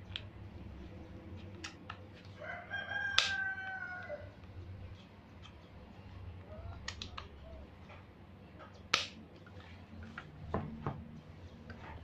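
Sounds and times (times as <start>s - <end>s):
rooster crowing: 2.4s - 4.4s.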